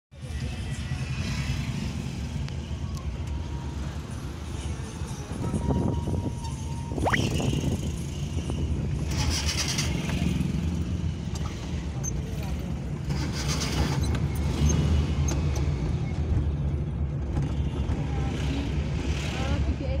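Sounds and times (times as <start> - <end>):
bus engine rumble: 0.2 - 20.0.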